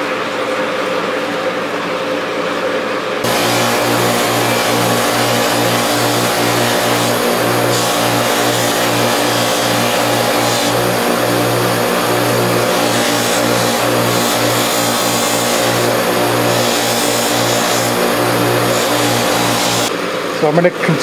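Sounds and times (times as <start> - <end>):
bench buffer motor humming: 3.2 - 19.9
buffing wheel whirring hiss: 3.2 - 19.9.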